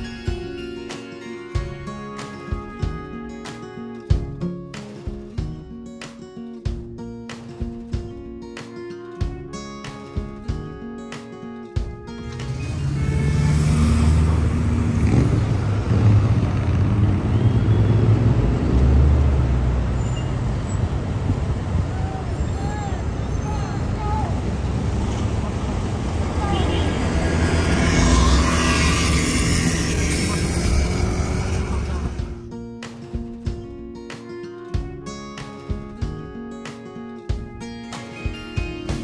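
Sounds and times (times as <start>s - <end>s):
surrounding traffic: 0.0s - 5.6s, 7.9s - 39.0s
road and engine rumble: 11.8s - 32.7s.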